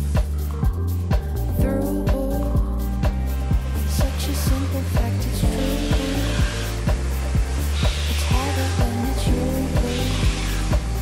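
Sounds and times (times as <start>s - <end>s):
pop music: 0.0s - 11.0s
cleaning machine motor whir: 3.4s - 11.0s.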